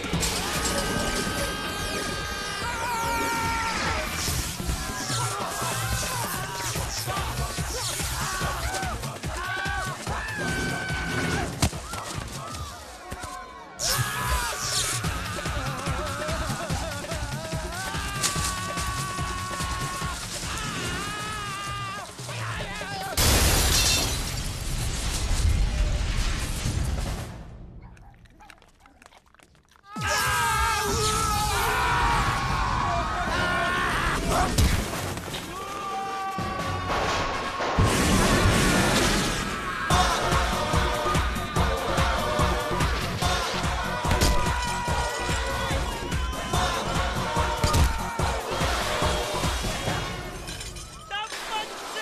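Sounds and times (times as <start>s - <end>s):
crockery crashing and clattering: 50.1s - 51.5s.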